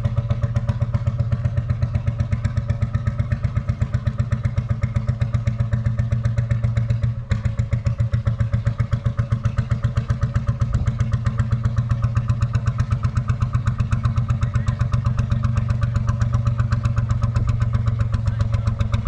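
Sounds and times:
engine chugging: 0.0 - 19.0.

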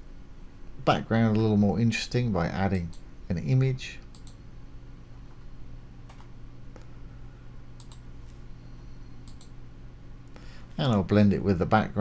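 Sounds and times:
low electrical hum: 0.0 - 12.0
computer mouse clicks: 4.1 - 4.4, 7.8 - 8.4, 9.2 - 9.6.

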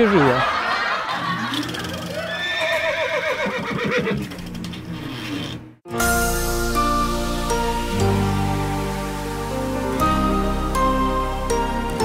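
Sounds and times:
horse whinnying: 2.0 - 4.3.

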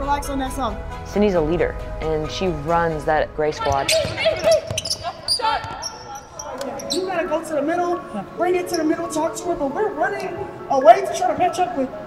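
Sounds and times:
players calling out: 3.5 - 8.9
basketballs bouncing on hardwood: 3.7 - 6.1.

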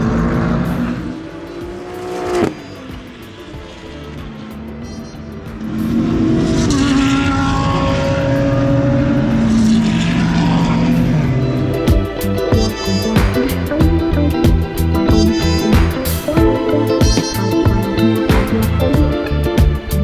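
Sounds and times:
race car engines: 0.0 - 20.0.

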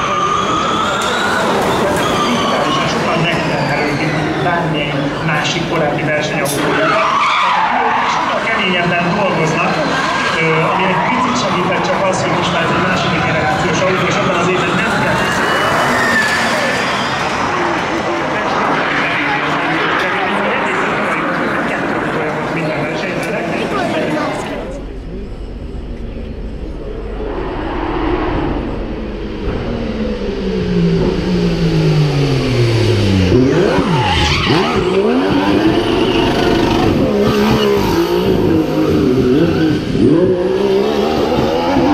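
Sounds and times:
race car tyres squealing: 0.0 - 24.6, 28.3 - 41.9.

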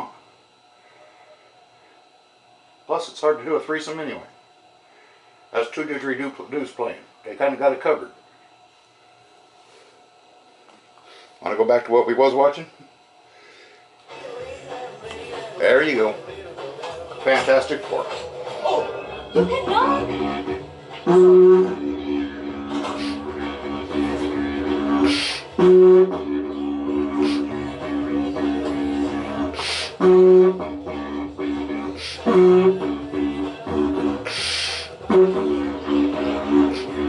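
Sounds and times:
didgeridoo droning: 17.2 - 37.0.

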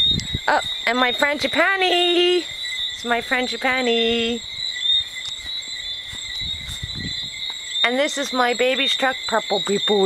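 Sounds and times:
crickets chirping: 0.0 - 10.0
rustling of leafy plants: 0.0 - 10.0.

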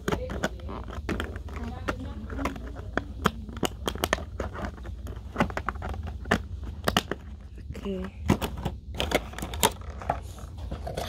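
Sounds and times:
vinyl clicking on cardboard: 0.0 - 10.2
plastic insert crinkling: 0.0 - 11.0.

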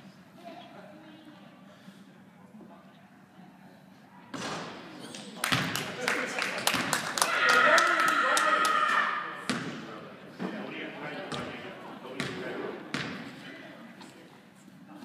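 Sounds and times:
raised voices: 7.2 - 9.5.

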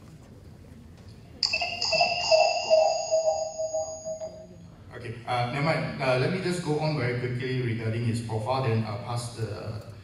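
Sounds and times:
electronic ringing tone: 1.4 - 4.6.

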